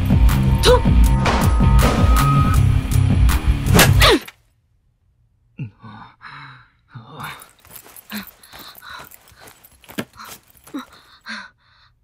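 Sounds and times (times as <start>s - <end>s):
breathy gasps and sighs: 5.6s - 12.0s.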